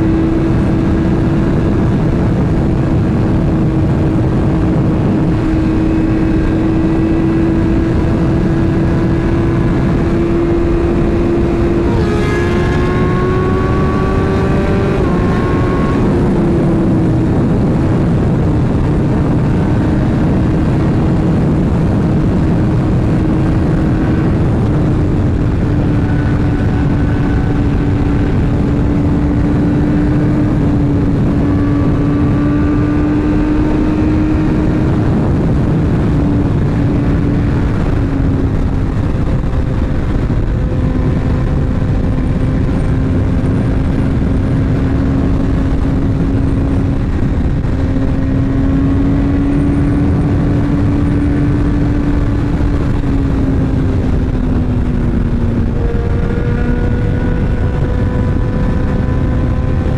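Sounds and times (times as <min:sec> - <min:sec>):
motorcycle engine cruising: 0:00.0 - 0:59.9
wind rush on microphone: 0:00.0 - 0:59.9.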